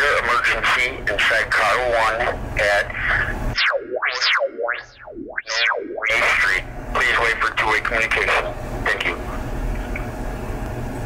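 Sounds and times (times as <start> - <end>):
recorded phone voice: 0.1 - 3.4, 5.5 - 9.2
synthetic tone sliding up and down: 3.5 - 6.5.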